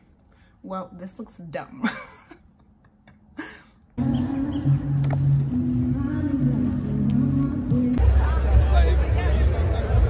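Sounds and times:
breath: 0.3s - 0.6s
person laughing: 1.8s - 3.9s
crowd noise: 4.0s - 10.0s.

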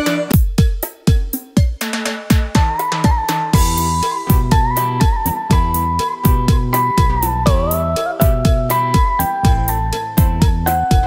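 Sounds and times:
electronic backing music: 0.0s - 11.0s
kick drum and snare beat: 0.0s - 11.0s
held high note: 2.6s - 10.1s.

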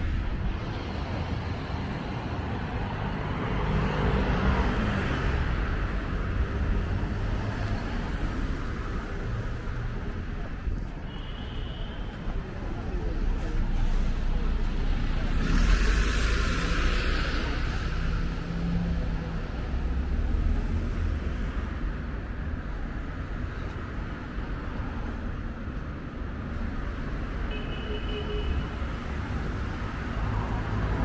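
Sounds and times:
street traffic: 0.0s - 31.0s.

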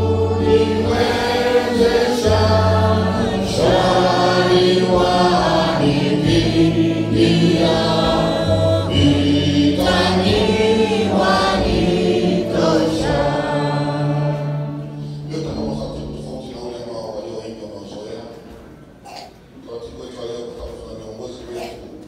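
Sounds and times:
choir singing gospel: 0.0s - 16.5s.

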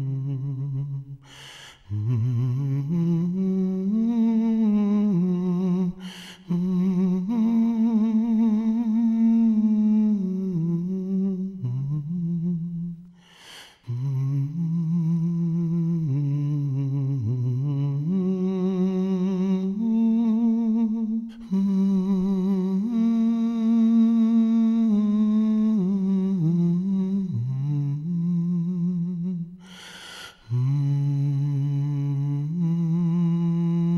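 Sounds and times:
man humming: 0.0s - 13.2s
man breathing in: 1.2s - 1.9s, 6.0s - 6.5s, 13.1s - 13.9s, 29.6s - 30.5s.

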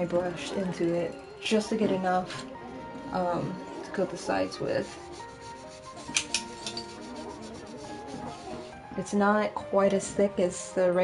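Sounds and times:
quiet background music: 0.0s - 11.0s
paintbrush scratching on canvas: 4.4s - 8.8s.

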